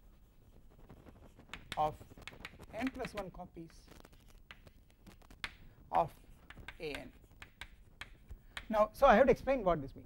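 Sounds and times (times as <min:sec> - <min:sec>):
chalk tapping on blackboard: 0:01.2 - 0:05.6, 0:06.3 - 0:08.9.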